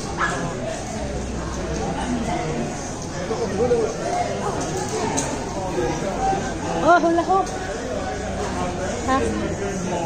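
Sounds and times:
chatter in shopping hall: 0.0 - 10.0
dog barking: 0.2 - 0.5.

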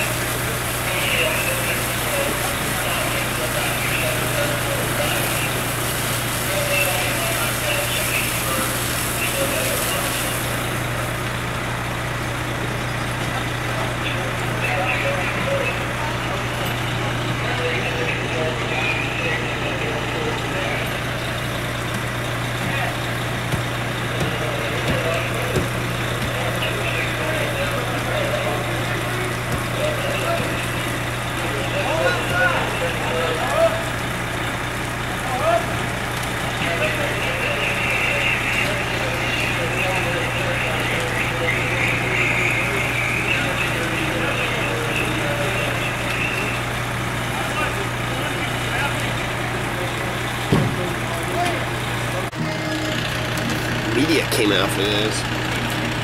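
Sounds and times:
diesel engine idling: 0.0 - 56.0
indistinct voices: 0.0 - 56.0.

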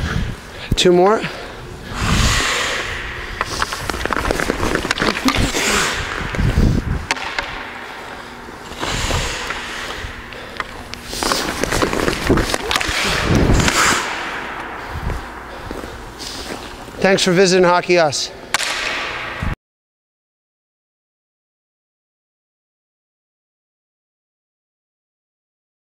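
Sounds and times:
ice skate blades scraping: 2.3 - 7.4, 8.6 - 14.4
hockey stick striking pucks: 2.7 - 6.4, 7.0 - 14.8, 18.5 - 19.4.

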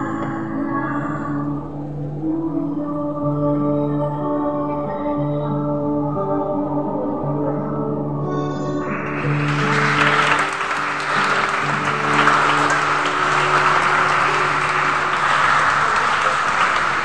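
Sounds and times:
audience applauding: 8.9 - 17.0
held final chord: 9.1 - 17.0.

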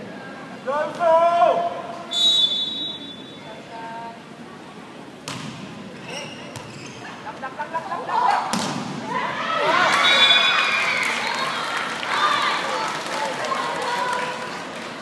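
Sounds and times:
volleyball hits: 5.2 - 5.8, 8.5 - 9.2
crowd shouting and cheering: 9.0 - 15.0.

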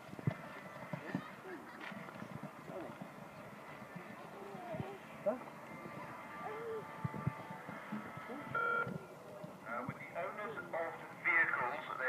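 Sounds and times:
faint background voices: 0.2 - 12.0.

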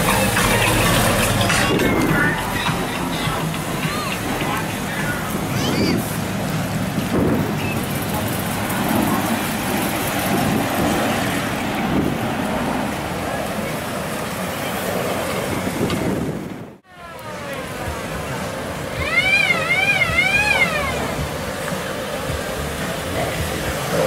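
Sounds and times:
cars driving slowly past: 0.0 - 24.0
crowd chatter: 0.0 - 24.0
falling tones: 18.7 - 21.4.

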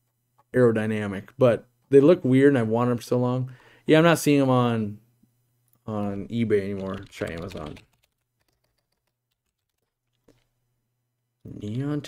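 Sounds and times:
keyboard typing: 6.0 - 10.5.

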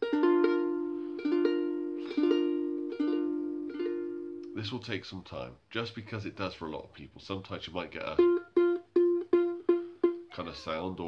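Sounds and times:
ukulele strumming a chord: 0.0 - 4.6.

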